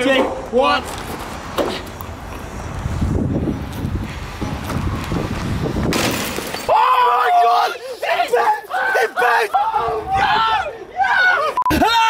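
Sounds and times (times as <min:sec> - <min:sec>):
excited voices yelling and screaming: 0:06.7 - 0:12.0.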